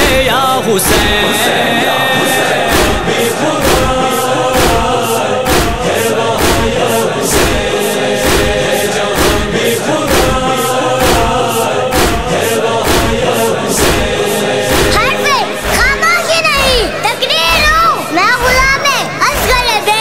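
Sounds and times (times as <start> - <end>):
group of voices chanting: 0.0 - 20.0
hands striking chests: 9.2 - 9.5.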